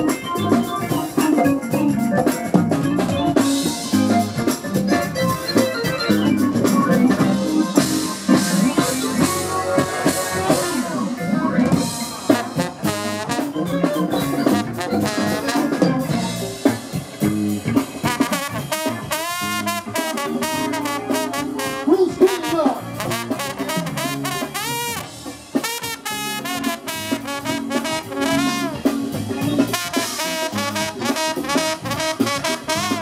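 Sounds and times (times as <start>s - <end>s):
live funk band playing: 0.0s - 33.0s.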